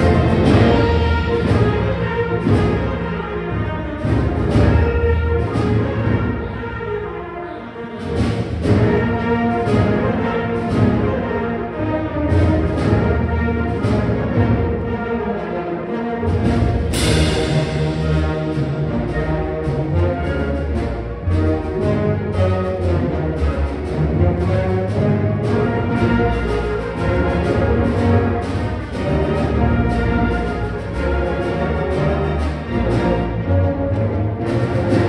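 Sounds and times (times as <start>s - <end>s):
percussion strikes: 0.0s - 6.9s, 8.0s - 15.0s, 16.2s - 35.0s
brass and woodwind chords: 0.0s - 8.2s, 13.2s - 23.6s.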